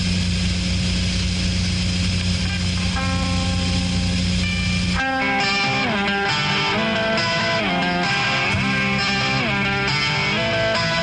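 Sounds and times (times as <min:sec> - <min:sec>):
electric guitar through amplifier: 0:00.0 - 0:11.0
low hum with hiss: 0:00.0 - 0:11.0.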